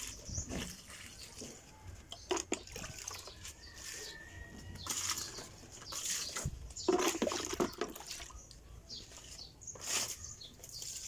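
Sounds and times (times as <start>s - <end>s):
water splashing onto plants: 2.2s - 4.1s, 6.0s - 8.6s.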